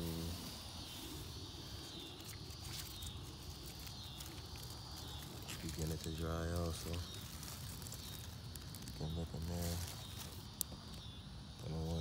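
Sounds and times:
high-pitched insect drone: 0:00.0 - 0:12.0
rustling leaves and vines: 0:00.0 - 0:12.0.

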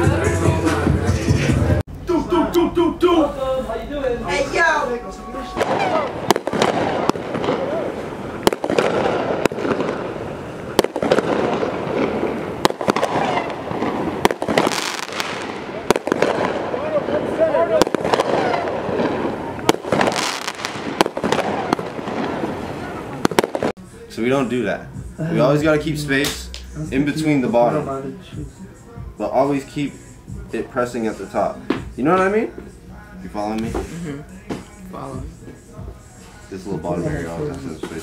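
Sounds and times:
fireworks banging: 0:05.2 - 0:23.8.

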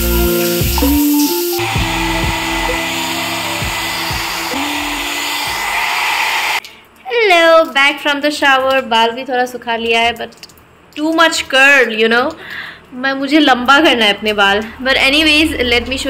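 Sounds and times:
background music: 0:00.0 - 0:05.3
hair dryer running: 0:00.6 - 0:06.6.

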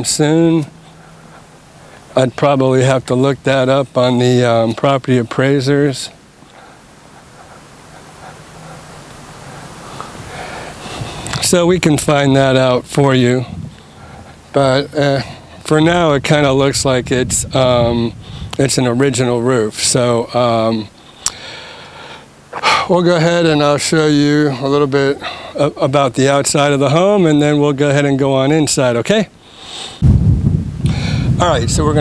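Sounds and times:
even outdoor hiss: 0:00.0 - 0:32.0
man inhaling breath: 0:00.7 - 0:02.2, 0:06.4 - 0:11.4, 0:13.5 - 0:14.5, 0:18.2 - 0:18.6, 0:21.0 - 0:22.9, 0:29.4 - 0:30.0, 0:30.8 - 0:31.4
mouth click: 0:21.2 - 0:21.4.

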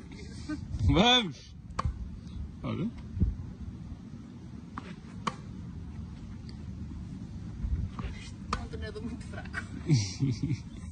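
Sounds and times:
low background rumble: 0:00.0 - 0:10.9
racket striking tennis ball: 0:01.7 - 0:02.0, 0:04.7 - 0:05.6, 0:07.9 - 0:08.8.

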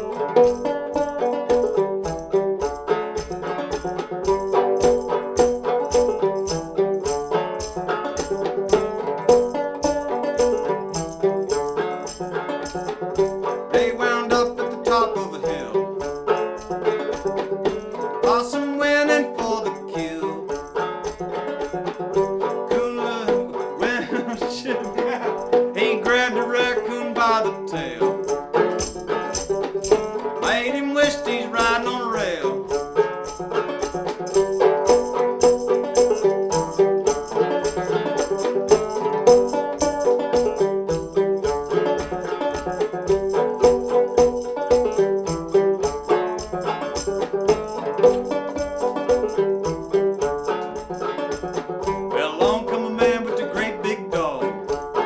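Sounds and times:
banjo picking: 0:00.0 - 0:55.0.

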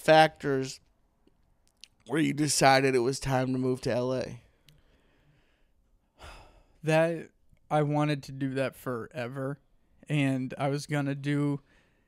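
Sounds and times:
person talking: 0:01.8 - 0:04.4.

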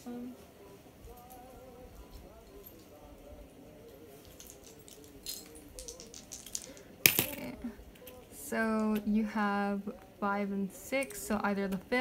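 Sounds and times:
faint background music: 0:00.0 - 0:12.0
small hard objects clinking: 0:04.2 - 0:07.5.

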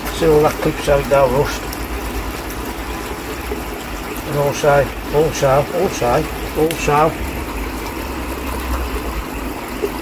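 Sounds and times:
running pond water: 0:00.0 - 0:10.0.

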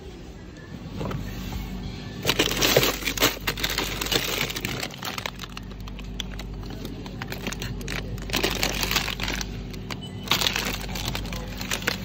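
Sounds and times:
crackling: 0:02.2 - 0:12.0
plastic bags crinkling: 0:02.2 - 0:12.0.

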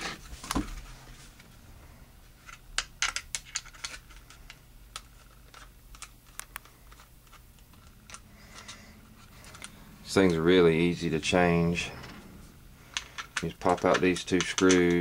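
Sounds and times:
screwdriver clicking on screws: 0:12.9 - 0:15.0.

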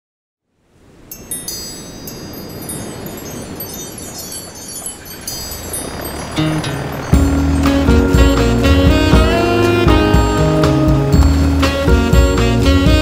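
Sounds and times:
wind chimes tinkling: 0:01.0 - 0:08.6
steady rushing noise: 0:01.6 - 0:13.0.

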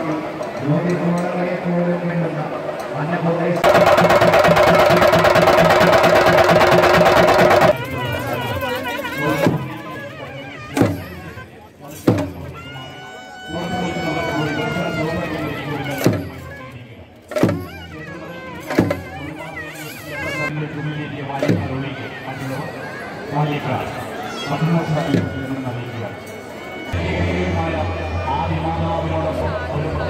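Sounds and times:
crowd voices: 0:00.0 - 0:30.0
drum ensemble playing: 0:03.6 - 0:07.8
sharp drum strikes: 0:03.6 - 0:07.8.

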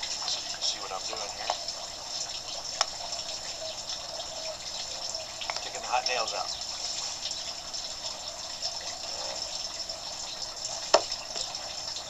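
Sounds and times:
running water: 0:00.0 - 0:12.0.

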